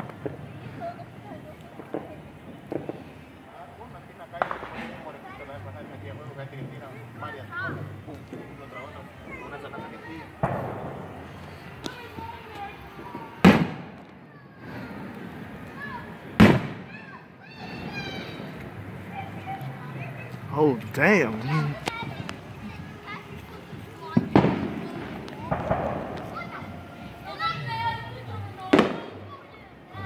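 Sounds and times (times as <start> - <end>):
firework bang: 0.0 - 6.0, 9.6 - 20.0, 21.8 - 27.1, 28.6 - 29.3
firework shell bang: 4.3 - 5.4, 10.4 - 12.3, 13.0 - 14.1, 16.3 - 18.6, 24.1 - 26.6, 28.7 - 29.2.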